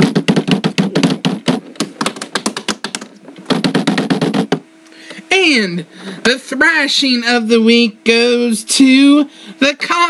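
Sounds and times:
typing on computer keyboard: 0:00.0 - 0:04.6.

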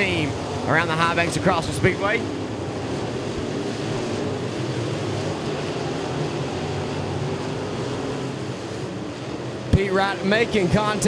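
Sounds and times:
race car engines racing: 0:00.0 - 0:11.0.

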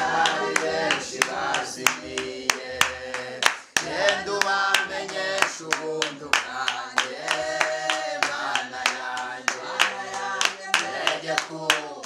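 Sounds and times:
group singing: 0:00.0 - 0:12.0
hand claps: 0:00.0 - 0:12.0.

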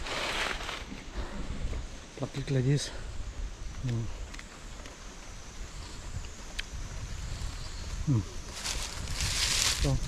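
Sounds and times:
hissing rustle: 0:00.0 - 0:10.0.

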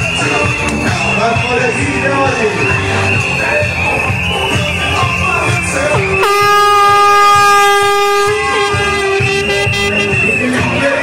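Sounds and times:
carnival music with beat: 0:00.0 - 0:11.0
horn blast: 0:06.2 - 0:11.0.

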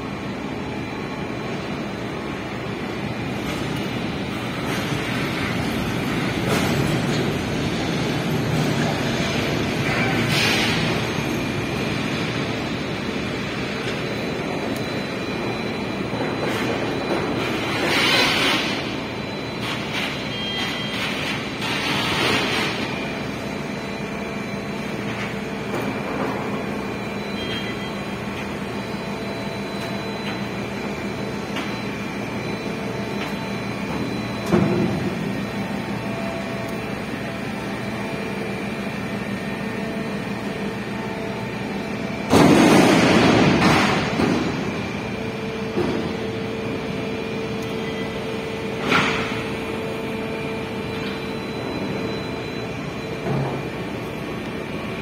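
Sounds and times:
crane machinery humming: 0:00.0 - 0:55.0.

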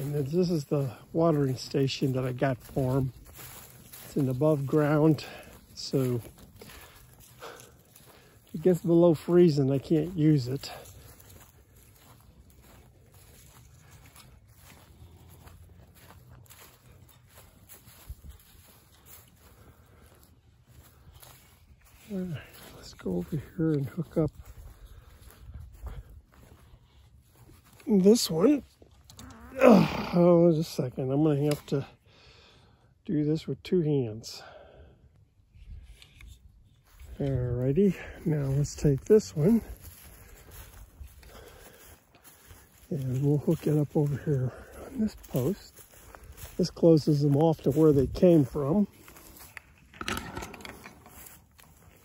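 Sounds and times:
footsteps through dry grass: 0:00.0 - 0:52.0.

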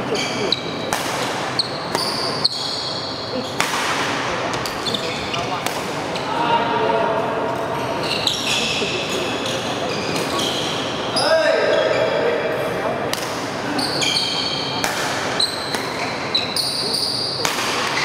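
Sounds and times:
shoes squeaking on sports floor: 0:00.0 - 0:00.8, 0:01.5 - 0:03.6, 0:04.6 - 0:06.3, 0:07.8 - 0:12.2, 0:13.7 - 0:18.0
rackets striking shuttlecock: 0:03.5 - 0:04.9, 0:14.7 - 0:16.3, 0:17.3 - 0:18.0.

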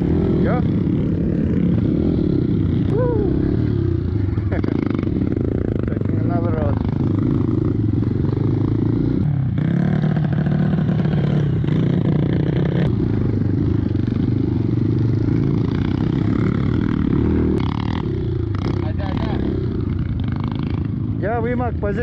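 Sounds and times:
dirt bike engine revving: 0:00.0 - 0:22.0.

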